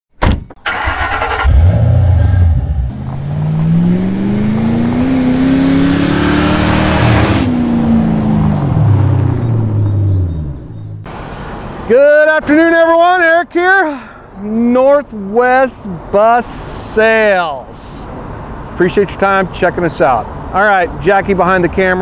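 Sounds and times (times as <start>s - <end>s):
engine revving: 0.7s - 11.1s.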